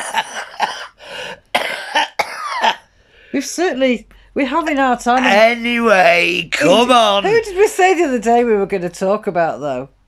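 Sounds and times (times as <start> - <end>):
woman coughing: 0.0 - 2.9.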